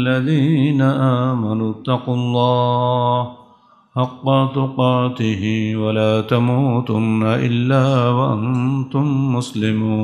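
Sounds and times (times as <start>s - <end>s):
man chanting melodically: 0.0s - 3.4s, 4.0s - 10.0s.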